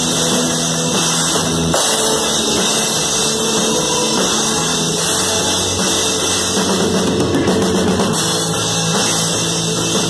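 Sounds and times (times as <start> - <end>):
drum kit played hard: 0.0 - 10.0.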